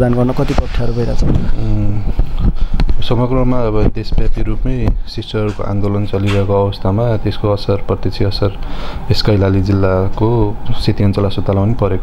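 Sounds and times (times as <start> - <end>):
man speaking: 0.0 - 2.1, 3.0 - 12.0.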